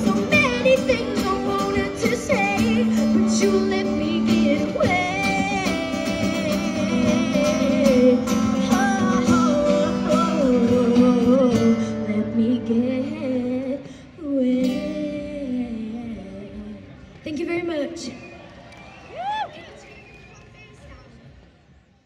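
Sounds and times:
acoustic guitar: 0:00.0 - 0:16.8.

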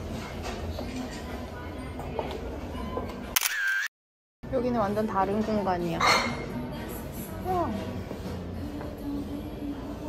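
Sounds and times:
phone camera shutter click: 0:03.4 - 0:03.9.

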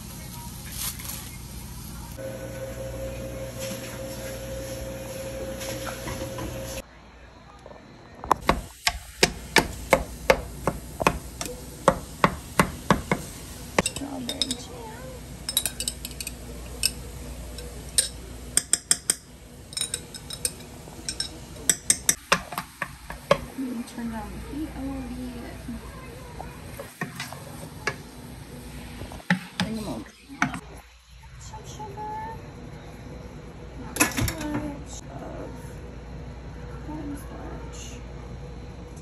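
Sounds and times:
steady hum: 0:01.5 - 0:39.0
glass jar and utensils clinking on pan: 0:13.8 - 0:14.7, 0:15.4 - 0:22.2.

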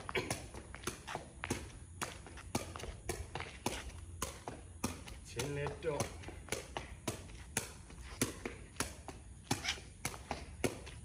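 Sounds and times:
ball kicked with sharp taps: 0:00.0 - 0:11.0.

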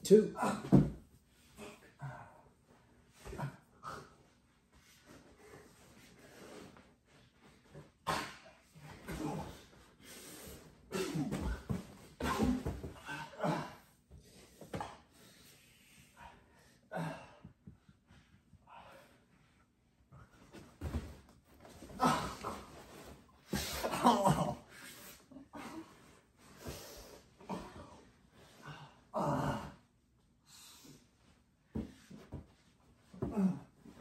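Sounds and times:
men breathing heavily and grunting: 0:00.4 - 0:04.4, 0:07.6 - 0:19.3, 0:21.8 - 0:29.9.

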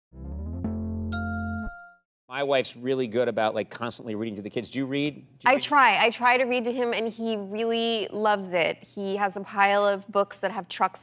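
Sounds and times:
bright bell-like ding: 0:01.1 - 0:02.0.

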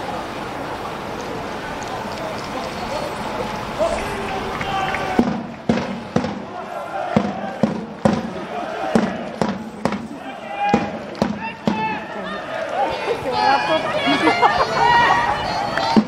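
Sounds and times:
football supporters chanting: 0:03.8 - 0:14.2
sharp rhythmic beats: 0:07.2 - 0:11.9.

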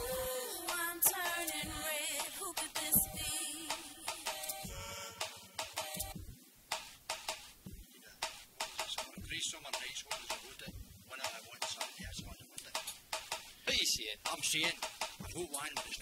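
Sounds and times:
song playing: 0:00.0 - 0:06.2.

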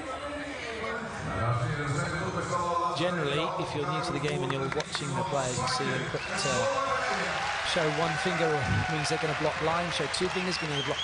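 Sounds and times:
man talking: 0:01.3 - 0:11.0.

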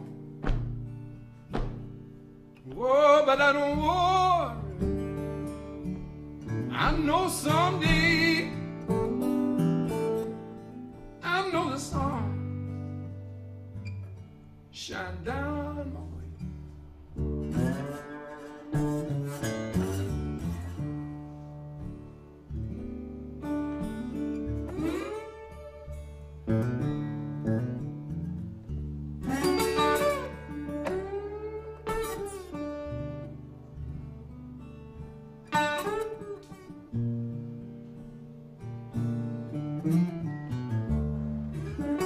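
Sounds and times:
acoustic blues guitar: 0:00.0 - 0:42.0.

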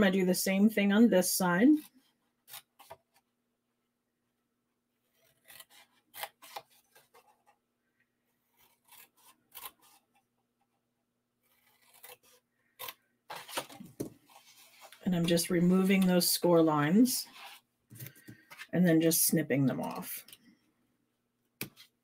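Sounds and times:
scissors snipping cardstock: 0:08.5 - 0:10.2, 0:11.4 - 0:14.1.

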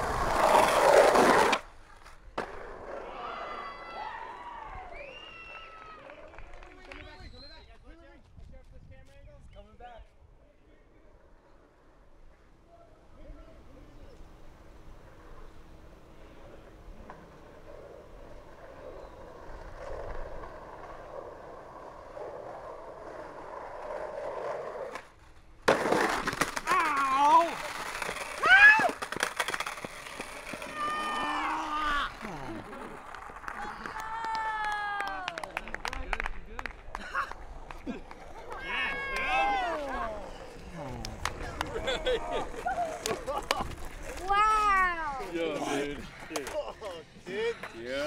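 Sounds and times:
faint outdoor background: 0:00.0 - 0:48.0
young men shouting and whooping: 0:28.4 - 0:29.0, 0:30.6 - 0:32.4, 0:38.5 - 0:43.4.

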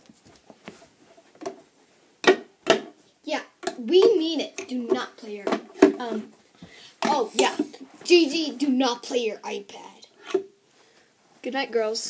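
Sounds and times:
plastic knocks and clicks: 0:01.4 - 0:01.6, 0:02.2 - 0:03.0, 0:03.6 - 0:06.3
child's wordless voice: 0:03.2 - 0:06.4, 0:07.0 - 0:10.2, 0:11.4 - 0:12.0.

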